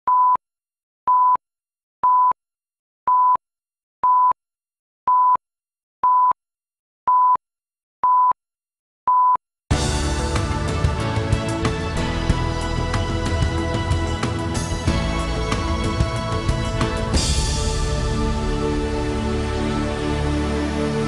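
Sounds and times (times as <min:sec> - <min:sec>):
music: 0:09.7 - 0:21.0.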